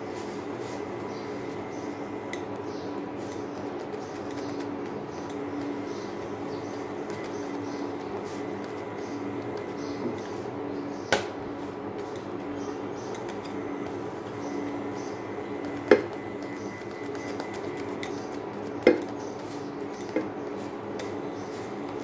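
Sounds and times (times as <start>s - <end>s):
steady hum: 0.0s - 22.0s.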